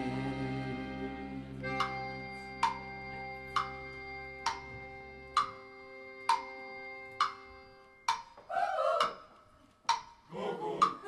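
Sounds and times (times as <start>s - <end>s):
live band holding a chord: 0.0s - 3.5s
sharp evenly spaced ticks: 1.7s - 8.4s, 9.0s - 11.0s
murmuring voices: 10.3s - 11.0s.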